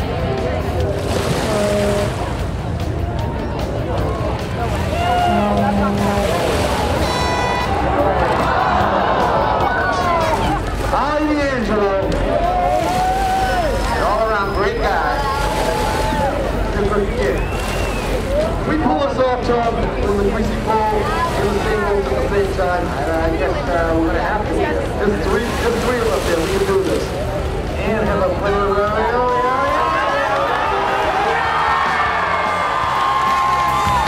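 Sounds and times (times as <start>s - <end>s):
crowd shouting and whooping: 3.2s - 5.7s, 7.0s - 10.7s, 12.2s - 18.6s, 29.2s - 34.0s.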